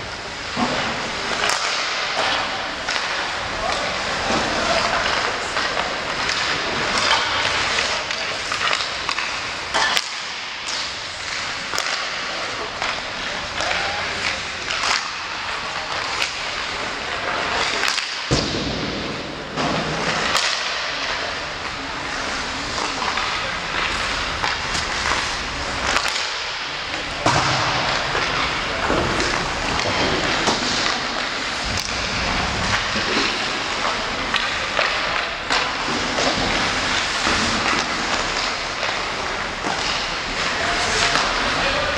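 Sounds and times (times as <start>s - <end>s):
pucks cracking off sticks and boards: 0.4s - 41.9s
skates scraping on ice: 0.5s - 41.9s.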